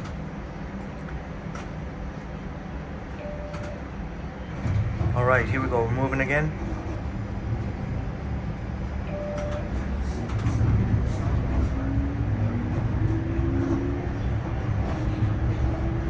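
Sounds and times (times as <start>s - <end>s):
streetcar rumbling on rails: 0.0s - 16.0s.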